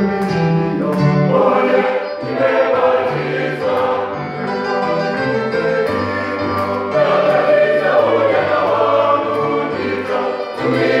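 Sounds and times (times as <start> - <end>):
mixed choir singing in harmony: 0.6 - 11.0.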